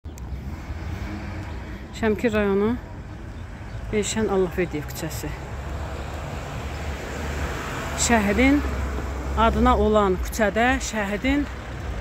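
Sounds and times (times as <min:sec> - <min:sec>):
outdoor street rumble: 0:00.0 - 0:12.0.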